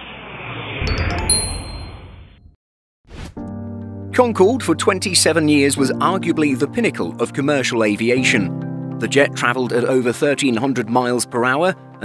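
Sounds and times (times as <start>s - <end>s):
rushing jet-like whoosh: 0.0s - 1.0s
bright chime: 0.8s - 2.3s.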